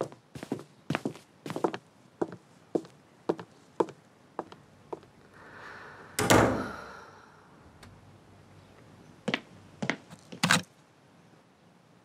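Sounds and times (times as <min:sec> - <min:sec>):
wooden door closing with thud: 0:06.2 - 0:06.7.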